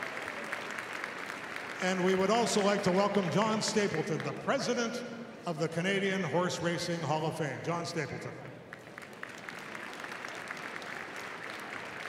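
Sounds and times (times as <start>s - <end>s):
audience applauding: 0.0s - 4.7s, 8.7s - 12.0s.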